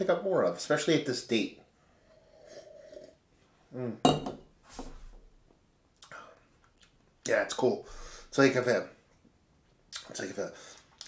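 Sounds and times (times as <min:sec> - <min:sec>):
person sipping: 0:02.0 - 0:03.2
glass clinking on wooden bar: 0:04.1 - 0:04.4.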